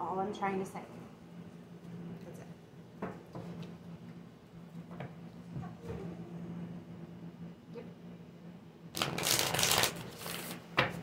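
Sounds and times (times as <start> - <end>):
cards shuffling: 9.0 - 10.9.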